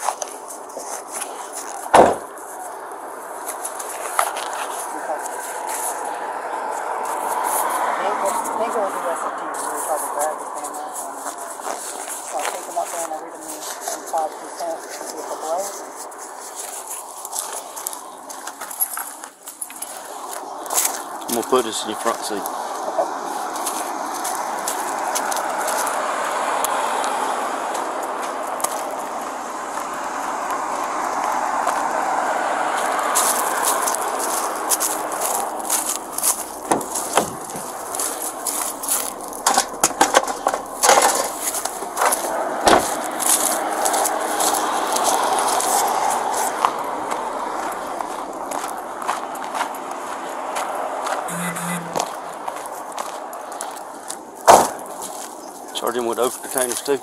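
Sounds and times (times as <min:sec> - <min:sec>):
hands rummaging: 0:33.2 - 0:45.2
bottles and bags rattling: 0:35.8 - 0:43.2.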